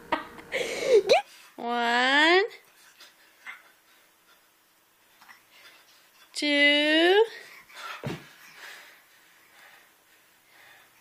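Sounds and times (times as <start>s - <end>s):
faint room sounds: 0.0s - 11.0s.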